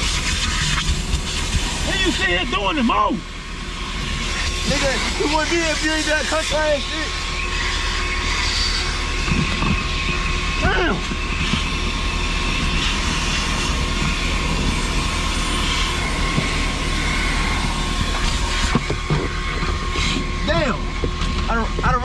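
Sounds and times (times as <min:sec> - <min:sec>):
vacuum hose sucking: 0:00.0 - 0:22.0.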